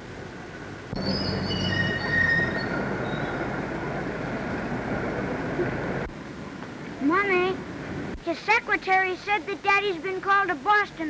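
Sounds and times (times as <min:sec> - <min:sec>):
train rumbling on rails: 0:00.0 - 0:08.3
metallic wheel squeals: 0:01.0 - 0:03.5.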